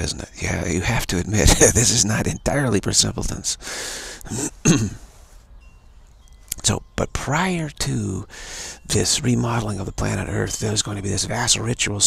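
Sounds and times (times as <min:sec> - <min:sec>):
man clearing his throat: 0:04.3 - 0:05.0.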